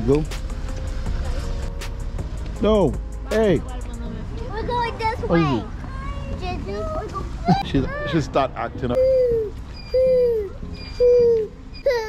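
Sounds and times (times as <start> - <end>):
toddler crying: 9.0 - 12.0.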